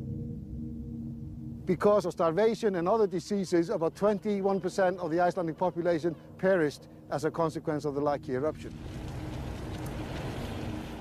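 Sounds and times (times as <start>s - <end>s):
molten lava churning roar: 8.7s - 11.0s.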